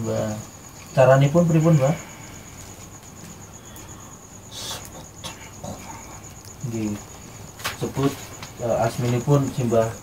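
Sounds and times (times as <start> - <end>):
insect trilling: 0.0 - 10.0.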